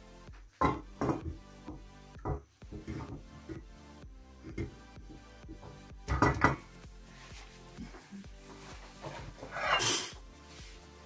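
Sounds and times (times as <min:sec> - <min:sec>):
background music: 0:00.0 - 0:11.0
metal pot clattering on stove: 0:06.1 - 0:06.6.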